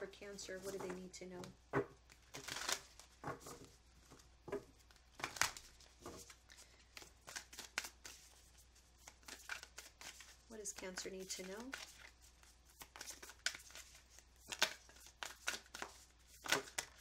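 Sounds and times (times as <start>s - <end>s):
cards being shuffled: 0.6s - 17.0s.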